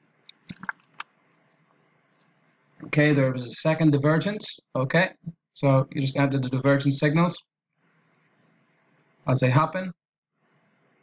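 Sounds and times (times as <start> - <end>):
mouth and bottle clicks: 0.3 - 1.1
man swallowing gulps: 0.5 - 0.9.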